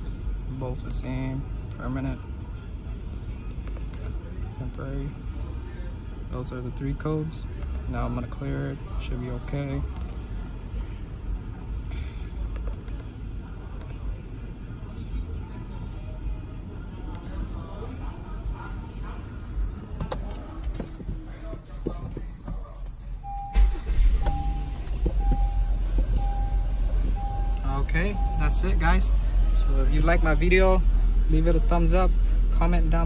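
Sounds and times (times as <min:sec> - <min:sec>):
car engine low rumble: 0:00.0 - 0:33.0
steady background noise: 0:00.0 - 0:33.0
seatbelt reminder chime beeping: 0:23.2 - 0:28.9.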